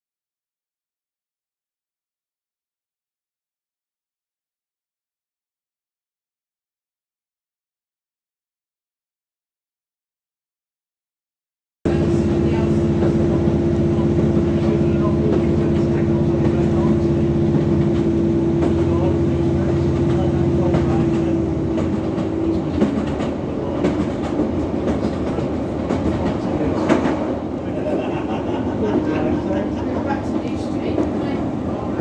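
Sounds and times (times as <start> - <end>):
train running at speed: 11.9 - 32.0
wheels rumbling on rails: 11.9 - 32.0.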